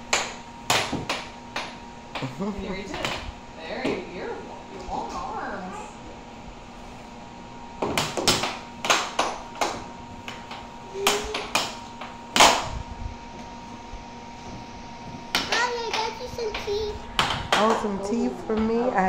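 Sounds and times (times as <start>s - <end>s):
steady hum: 0.0s - 19.0s
air hockey puck clacking: 7.8s - 12.6s, 15.3s - 17.8s.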